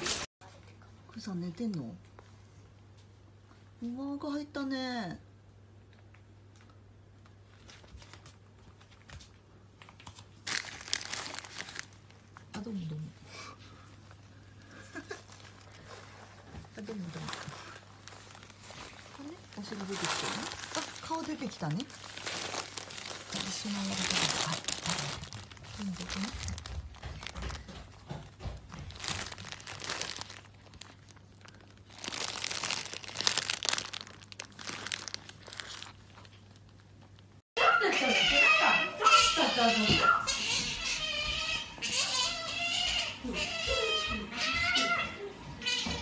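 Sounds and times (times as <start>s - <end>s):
crinkly fabric tunnel rustling: 10.4s - 12.2s, 15.0s - 27.6s, 28.9s - 36.3s
otter squeaking: 37.9s - 46.0s.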